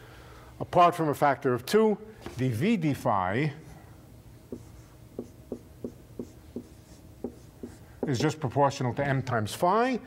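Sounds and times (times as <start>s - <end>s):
chalk writing on blackboard: 4.5s - 8.4s.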